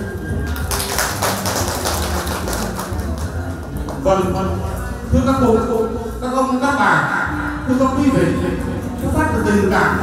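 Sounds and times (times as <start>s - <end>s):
applause: 0.4s - 4.0s.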